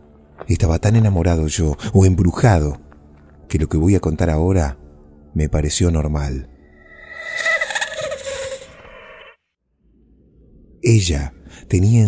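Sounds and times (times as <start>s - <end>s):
pulsing pitched sound effect: 6.7s - 9.4s.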